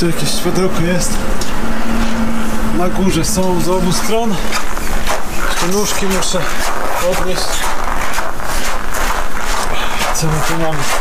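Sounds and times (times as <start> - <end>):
loud steady rushing noise: 0.0 - 11.0
footsteps crunching on snow: 1.5 - 11.0.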